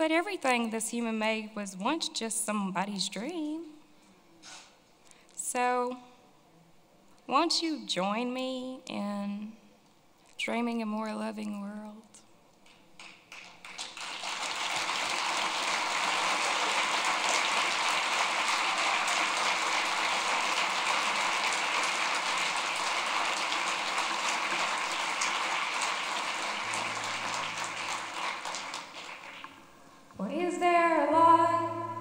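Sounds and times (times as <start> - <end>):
audience applauding: 12.7 - 29.7.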